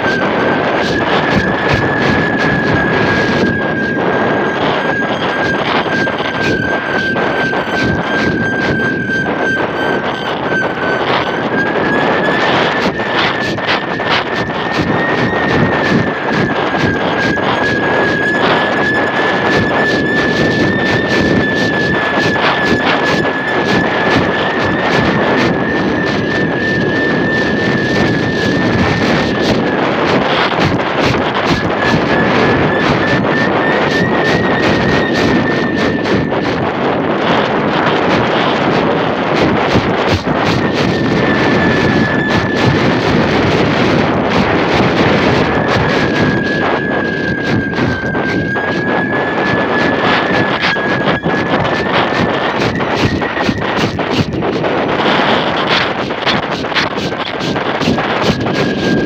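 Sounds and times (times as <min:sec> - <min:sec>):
wind rushing over microphone: 0:00.0 - 0:59.0
high thin whistling tone: 0:00.8 - 0:28.4, 0:45.6 - 0:53.9.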